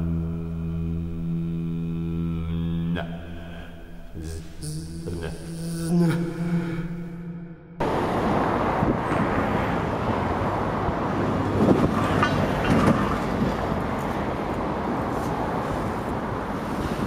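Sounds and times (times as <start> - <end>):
road traffic: 0.0 - 17.0
wind on microphone: 7.9 - 13.9.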